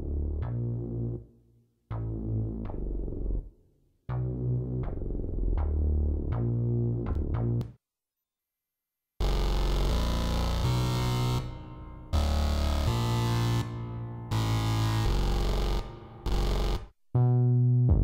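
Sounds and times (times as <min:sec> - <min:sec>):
harsh synthesizer notes: 0:09.2 - 0:18.0.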